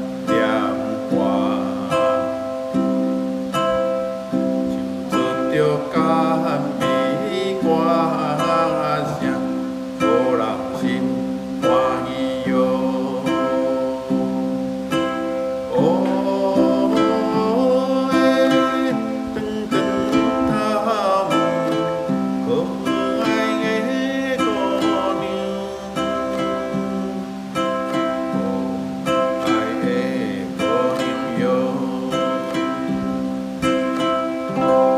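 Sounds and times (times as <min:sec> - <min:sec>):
person singing: 0:00.0 - 0:34.9
ukulele strumming: 0:00.0 - 0:34.9.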